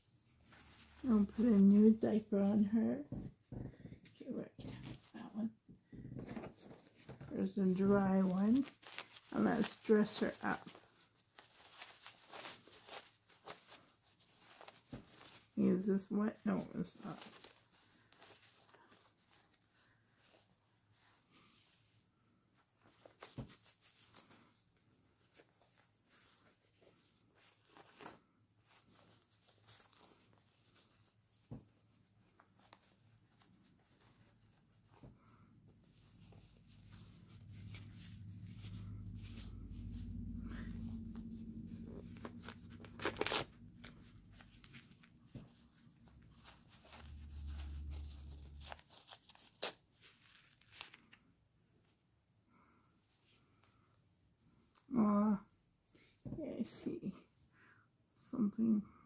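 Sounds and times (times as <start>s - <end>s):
diaper crinkling and rustling: 0.0s - 21.8s, 22.8s - 51.4s
low handling rumble: 36.1s - 44.7s
sharp ripping sounds: 36.3s - 45.2s, 46.1s - 51.2s.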